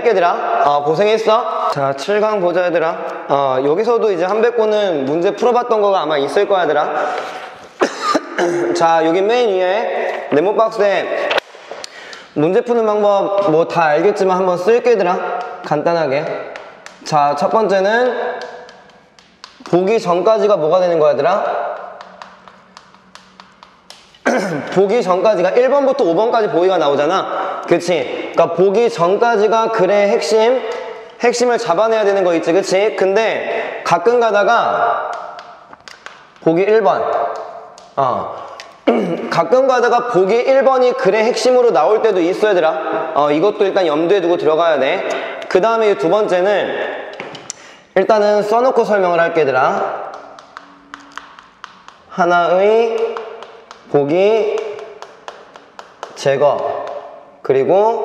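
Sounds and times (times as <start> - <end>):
chalk tapping on chalkboard: 15.3 - 20.2, 21.6 - 24.2, 35.1 - 36.6, 50.0 - 52.2, 52.8 - 57.2.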